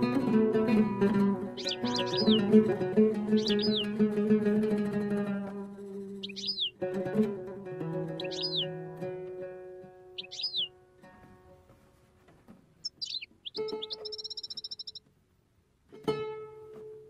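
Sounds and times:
oud plucked notes: 0.0s - 11.5s
songbird chirps: 1.1s - 4.2s, 5.8s - 6.8s, 8.0s - 8.8s, 10.0s - 15.1s.

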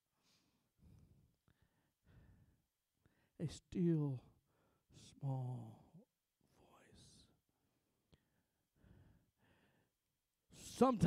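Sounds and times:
man whispering: 3.4s - 7.4s, 10.5s - 11.0s.

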